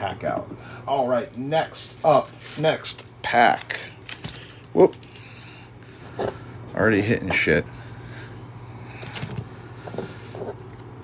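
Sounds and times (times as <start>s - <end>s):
low electrical hum: 0.0s - 11.0s
cards rustling and tapping: 2.0s - 5.2s.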